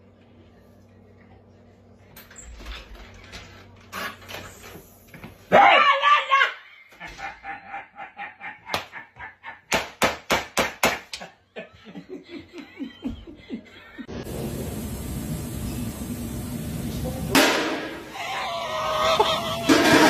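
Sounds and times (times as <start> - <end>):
loud bang: 17.3 - 18.1.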